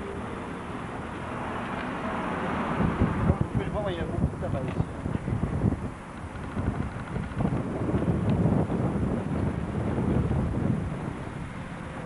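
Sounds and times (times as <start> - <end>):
wind buffeting microphone: 2.7 - 12.0.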